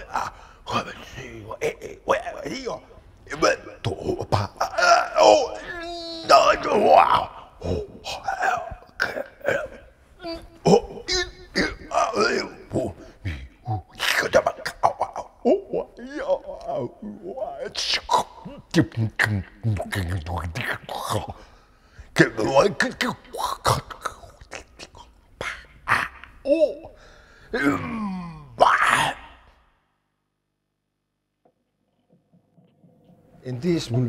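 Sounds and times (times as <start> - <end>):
man making throat noises and grunts: 3.8 - 21.5, 22.2 - 29.4.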